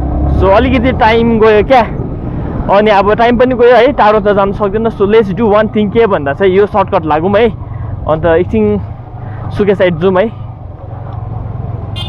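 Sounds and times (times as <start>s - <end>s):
man's voice: 0.4s - 2.0s.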